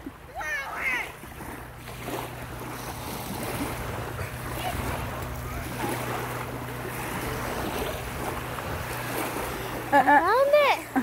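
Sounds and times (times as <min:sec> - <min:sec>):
wind rumbling on microphone: 0:00.0 - 0:10.6
waves lapping at shoreline: 0:00.0 - 0:11.0.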